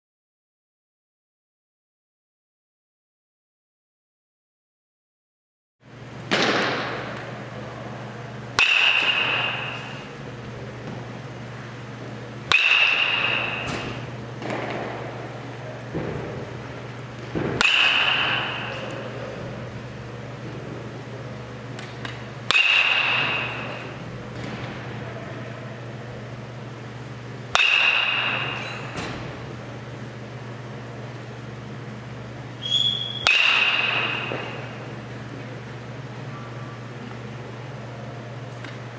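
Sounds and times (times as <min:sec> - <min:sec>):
steady low hum: 0:05.8 - 0:38.9
metal bat striking ball: 0:06.3 - 0:07.2, 0:08.6 - 0:10.1, 0:12.5 - 0:14.8, 0:17.4 - 0:18.9, 0:22.0 - 0:24.6, 0:27.5 - 0:29.1, 0:32.9 - 0:34.8.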